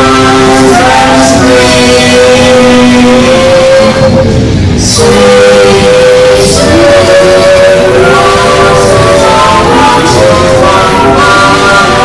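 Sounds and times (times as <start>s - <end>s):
a cappella vocal quartet chord: 0.0s - 12.0s.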